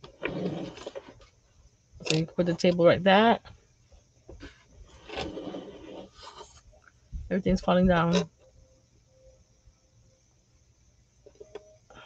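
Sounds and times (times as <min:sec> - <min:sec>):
faint light rubs: 0:04.4 - 0:06.7
wooden pieces sliding and scraping: 0:04.4 - 0:06.7.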